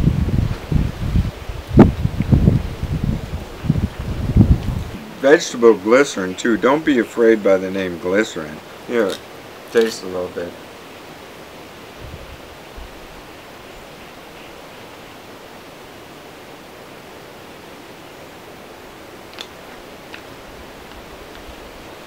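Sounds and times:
faint low bumps: 0.0 - 7.0
steady background hiss: 0.0 - 22.0.

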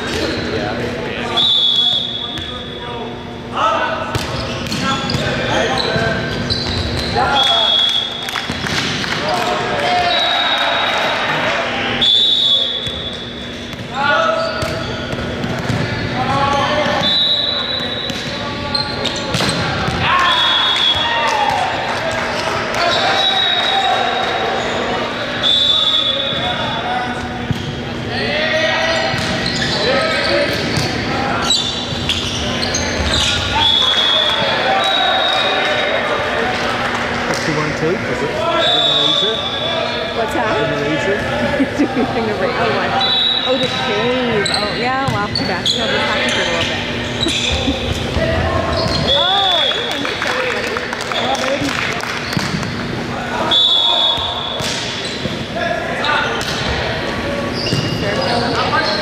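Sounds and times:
players shouting: 19.6 - 26.9
short high squeals: 28.1 - 30.5.

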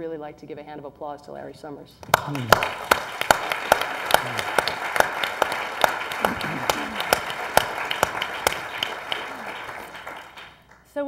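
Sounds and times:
audience applauding: 2.0 - 10.8
loud sharp claps close by: 2.0 - 10.9.

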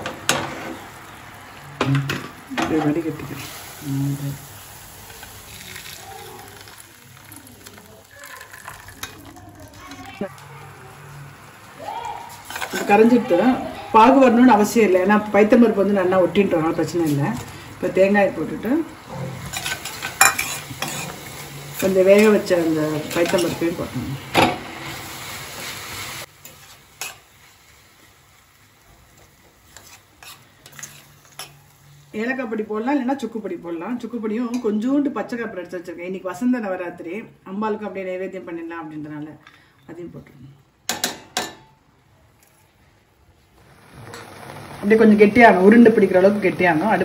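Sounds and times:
hot syrup fizzing: 0.1 - 26.4, 43.6 - 47.0
spoon stirring filling in pan: 5.0 - 11.6, 12.3 - 13.4, 16.8 - 31.8.

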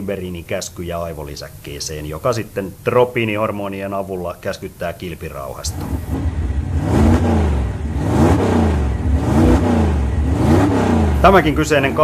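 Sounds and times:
motor engine revving: 5.7 - 12.0.

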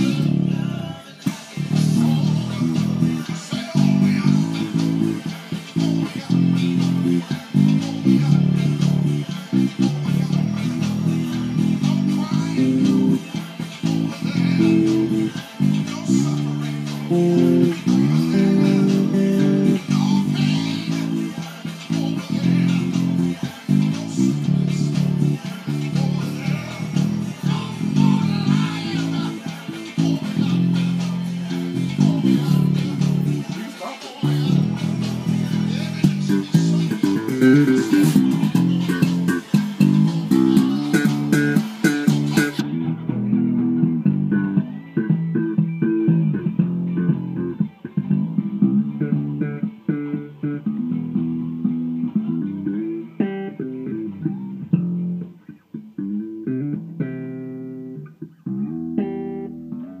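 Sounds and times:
electric bass line: 0.0 - 60.0
other music: 0.0 - 60.0.

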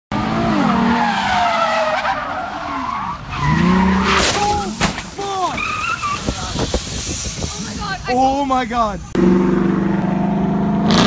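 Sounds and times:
tyres squealing: 0.9 - 8.2
car engine revving hard: 9.2 - 11.0.

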